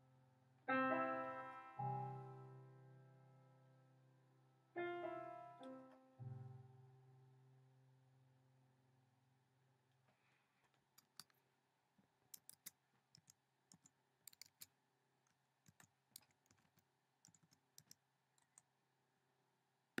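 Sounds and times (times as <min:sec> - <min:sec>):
keys clicking: 0:11.0 - 0:11.4, 0:12.4 - 0:14.7, 0:15.7 - 0:18.6.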